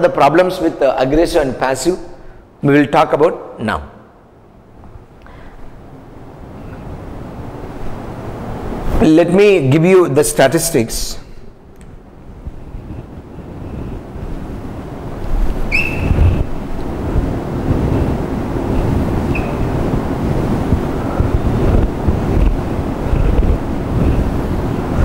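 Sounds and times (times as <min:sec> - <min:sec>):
marker squeaking on whiteboard: 0:15.7 - 0:16.4, 0:19.3 - 0:19.7.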